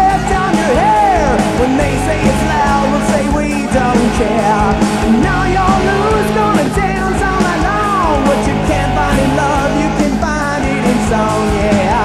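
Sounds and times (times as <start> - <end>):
rock music: 0.0 - 12.0.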